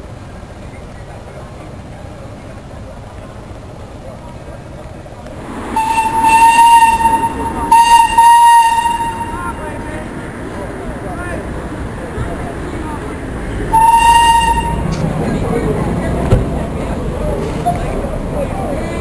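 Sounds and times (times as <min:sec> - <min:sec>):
steam whistle blasts: 0:05.7 - 0:09.6, 0:13.7 - 0:14.9.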